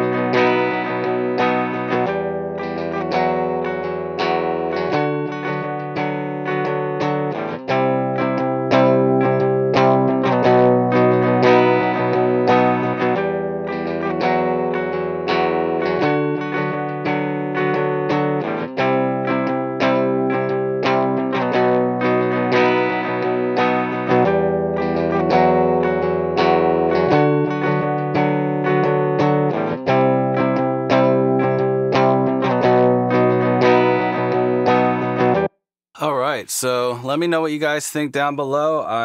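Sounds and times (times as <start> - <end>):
overdriven electric guitar chords: 0.0 - 35.5.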